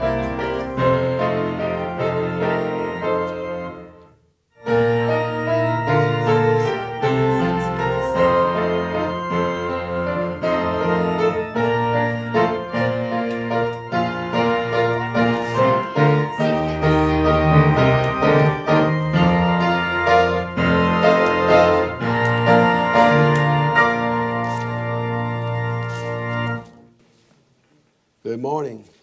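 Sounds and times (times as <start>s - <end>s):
church keyboard music: 0.0s - 29.0s.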